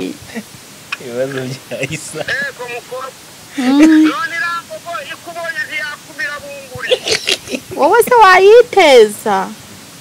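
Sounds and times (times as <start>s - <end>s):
woman sobbing: 3.5s - 4.2s, 6.8s - 8.1s
woman wailing: 3.6s - 4.3s.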